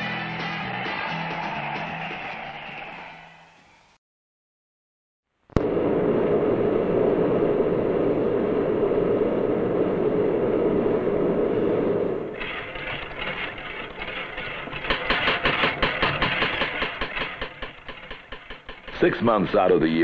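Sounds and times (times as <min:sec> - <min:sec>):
furnace roaring: 0:05.6 - 0:20.0
power hammer striking steel: 0:12.3 - 0:20.0.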